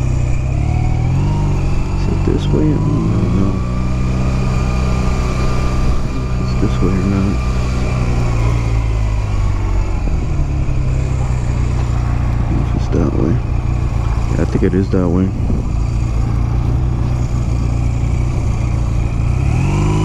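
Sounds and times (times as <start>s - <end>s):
motorcycle engine running: 0.0s - 20.0s.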